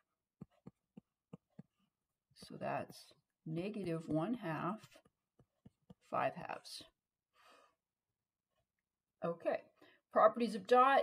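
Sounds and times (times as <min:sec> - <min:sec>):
faint breath: 0:07.3 - 0:07.8.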